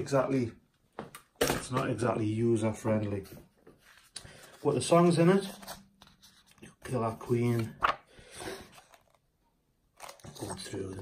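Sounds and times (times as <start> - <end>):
paper pages rustling: 3.0 - 9.2, 10.0 - 10.9.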